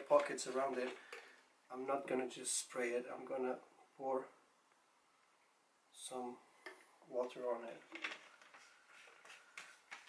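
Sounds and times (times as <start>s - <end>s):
soft plastic rustling: 0.0s - 1.4s, 7.2s - 10.0s.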